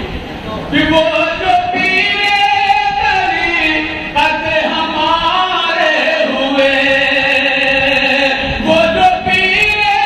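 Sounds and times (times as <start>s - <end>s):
man chanting into a microphone: 0.6s - 10.0s.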